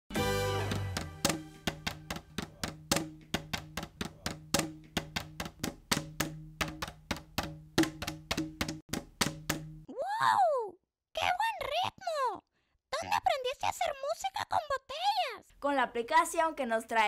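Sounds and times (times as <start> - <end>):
plastic bottles struck: 0.7 - 9.8.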